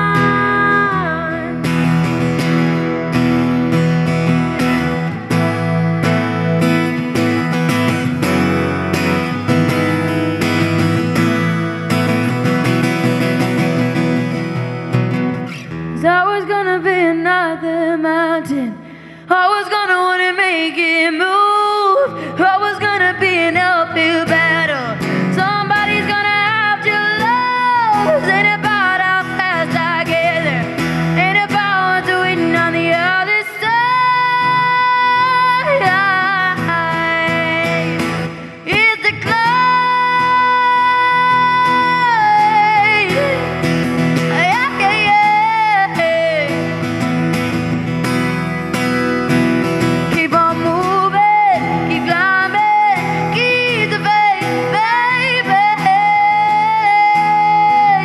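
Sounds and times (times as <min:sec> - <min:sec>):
woman singing a pop ballad: 0:00.0 - 0:02.9, 0:15.5 - 0:47.8, 0:49.7 - 0:58.0
strummed acoustic guitar: 0:00.0 - 0:58.0.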